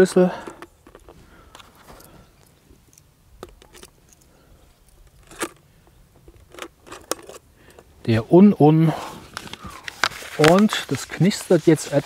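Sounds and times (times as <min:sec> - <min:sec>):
plastic bottle scraping: 0:08.9 - 0:12.0.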